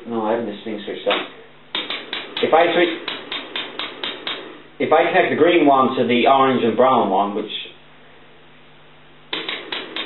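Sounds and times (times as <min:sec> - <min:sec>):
power supply clicking rapidly: 0:01.1 - 0:04.6, 0:09.3 - 0:10.0.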